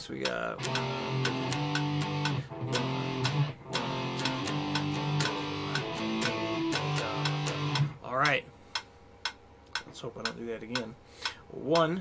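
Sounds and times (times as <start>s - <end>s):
electric guitar power chords: 0.6s - 8.0s.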